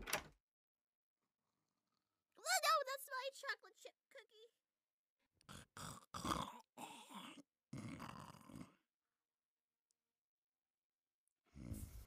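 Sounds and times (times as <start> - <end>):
person snoring: 5.5 - 8.8, 11.5 - 12.0.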